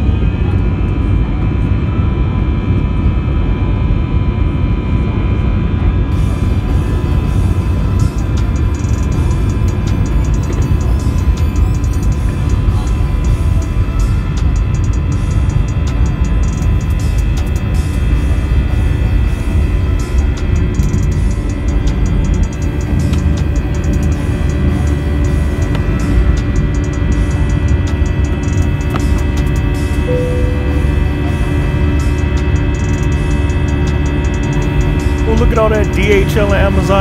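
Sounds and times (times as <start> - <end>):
jet engines rumbling: 0.0 - 37.0
background music: 6.1 - 37.0.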